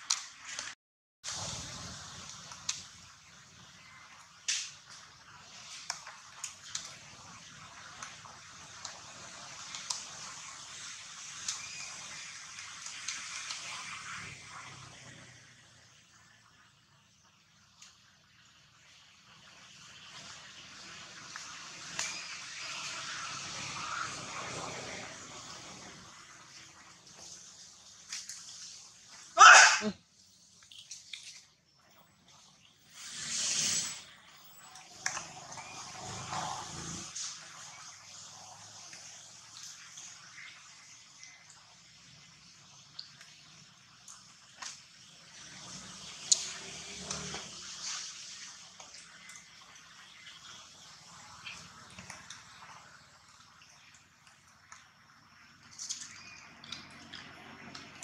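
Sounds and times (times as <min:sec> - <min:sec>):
steady hiss: 0:01.3 - 0:16.7, 0:32.8 - 0:34.6.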